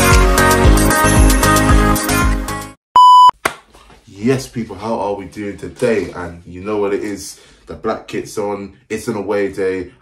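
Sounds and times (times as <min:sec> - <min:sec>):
high-pitched electronic beep: 0:03.0 - 0:03.3.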